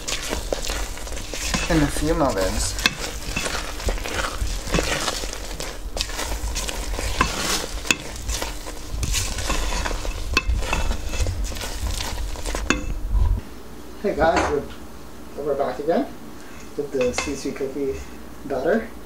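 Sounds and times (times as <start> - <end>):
wet stirring and scraping: 0.0 - 13.4.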